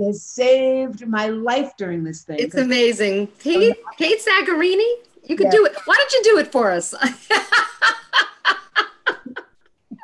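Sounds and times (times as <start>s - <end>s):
woman laughing heartily: 7.3s - 10.0s.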